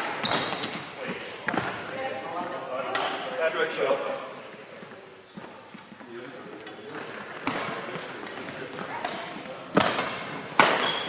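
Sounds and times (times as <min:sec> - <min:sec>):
racket hitting shuttlecock: 0:07.0 - 0:11.0.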